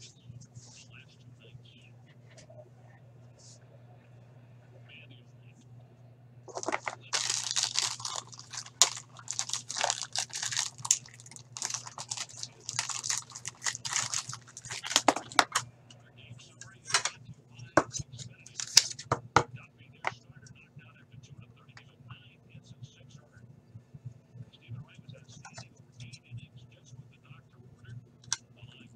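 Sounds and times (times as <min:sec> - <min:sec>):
packaging crinkling: 0:06.5 - 0:15.6.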